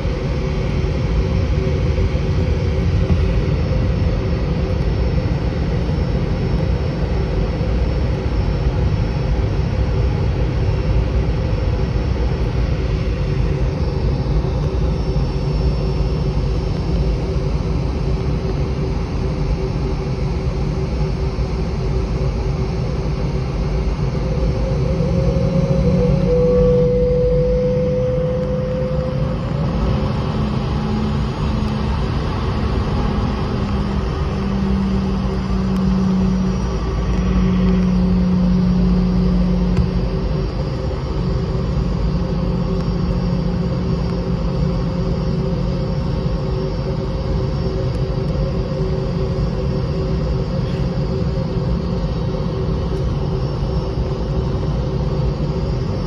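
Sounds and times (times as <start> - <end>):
jet engine rumble in cabin: 0.0 - 56.0
steady hum: 0.0 - 56.0
thin whine: 0.0 - 56.0.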